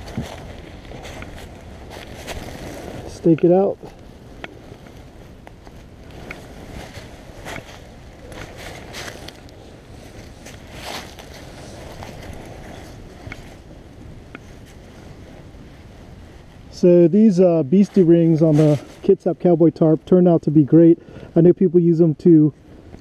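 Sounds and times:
dry leaves crackling: 0:00.0 - 0:16.6
jacket fabric rustling: 0:00.0 - 0:19.1
wind rumble on microphone: 0:00.0 - 0:23.0.

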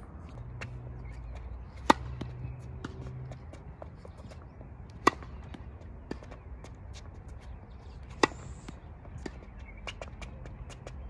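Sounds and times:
tennis ball struck by racket: 0:01.8 - 0:03.4, 0:04.9 - 0:06.4, 0:08.0 - 0:09.4.

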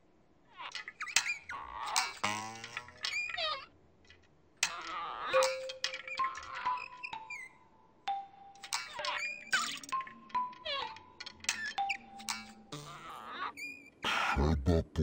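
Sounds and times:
musical sound effects: 0:05.4 - 0:06.0
squeaky cartoon character voice: 0:10.6 - 0:11.0, 0:12.8 - 0:15.0.

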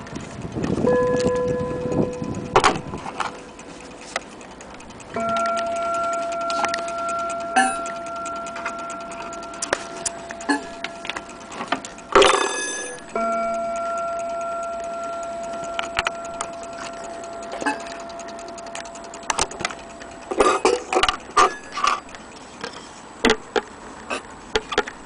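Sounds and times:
handling clicks and taps: 0:00.0 - 0:25.0
clock chime rod ringing: 0:00.7 - 0:22.2.

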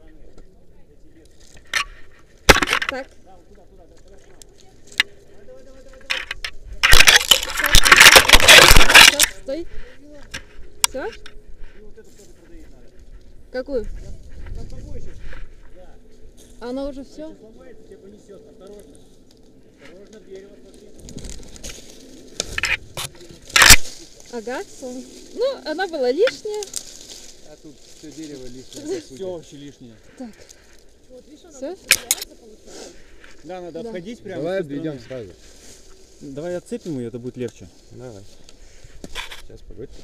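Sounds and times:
twigs and bark rustling and scraping: 0:00.0 - 0:40.0
twigs crackling: 0:00.0 - 0:40.0.

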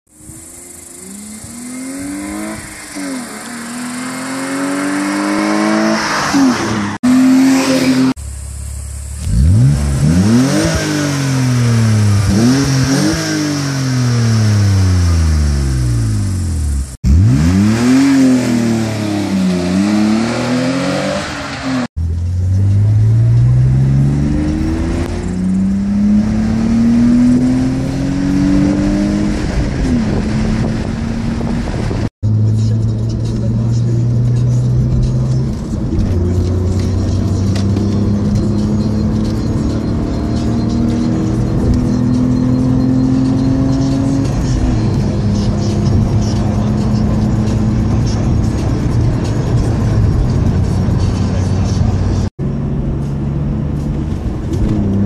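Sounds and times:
car engine revving: 0:00.1 - 0:55.0.

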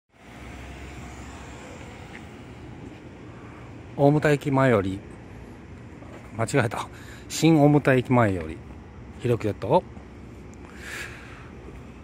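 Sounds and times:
distant road traffic hum: 0:00.1 - 0:12.0.

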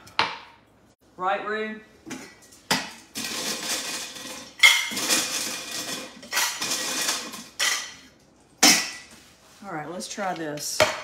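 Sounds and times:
dishes and utensils clattering: 0:02.1 - 0:09.2.

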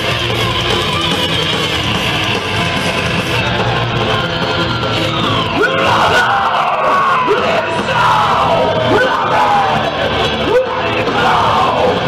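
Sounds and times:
death metal band playing live: 0:00.0 - 0:12.0
distorted guitars swooping: 0:00.0 - 0:12.0
vocalist yelling into microphone: 0:05.5 - 0:12.0.

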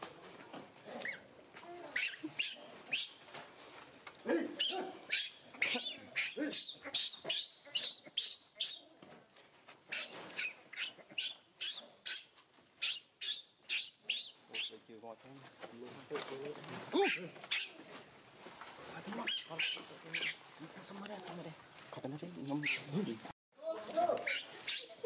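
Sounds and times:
baby monkey screaming: 0:01.9 - 0:03.2, 0:04.6 - 0:08.9, 0:09.9 - 0:14.7, 0:17.0 - 0:17.8, 0:19.2 - 0:20.4, 0:24.2 - 0:25.0.

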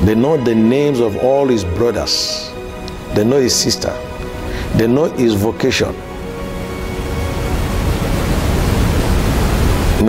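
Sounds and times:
static-like noise rush: 0:04.0 - 0:10.0.

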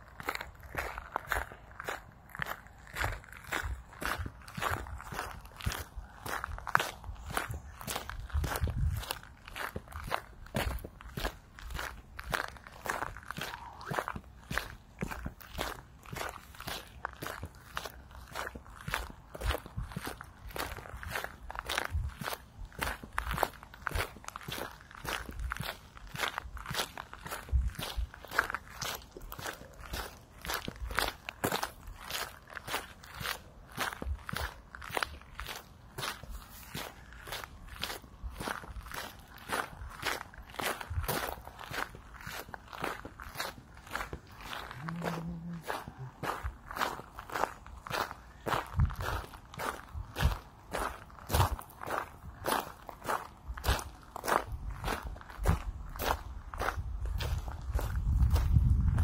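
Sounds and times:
footsteps on gravel: 0:00.0 - 0:59.0.

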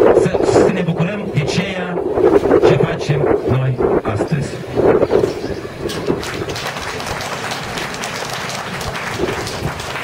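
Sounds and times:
man speaking: 0:00.2 - 0:04.7
crowd applauding: 0:05.9 - 0:10.0.

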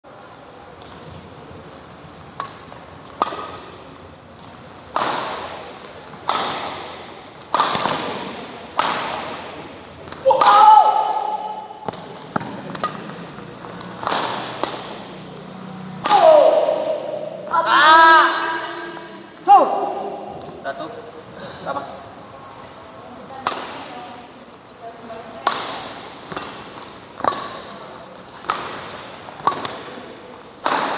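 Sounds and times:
racket striking shuttlecock: 0:02.3 - 0:03.9, 0:04.9 - 0:15.4, 0:16.0 - 0:17.4, 0:23.4 - 0:24.0, 0:25.4 - 0:30.9.

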